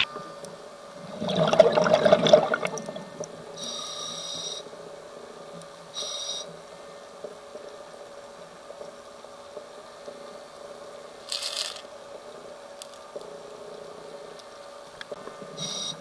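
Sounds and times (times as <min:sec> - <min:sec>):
steady hum: 0:00.0 - 0:16.0
scuba regulator breath hiss: 0:03.6 - 0:04.6, 0:06.0 - 0:06.5, 0:15.6 - 0:16.0.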